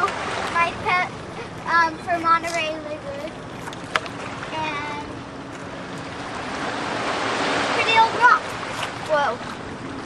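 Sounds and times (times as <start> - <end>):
ocean surf among boulders: 0.0 - 10.0.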